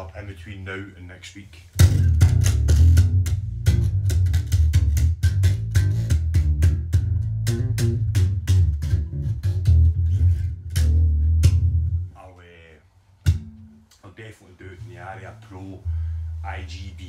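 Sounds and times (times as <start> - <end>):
electric bass guitar fast run: 1.8 - 12.1.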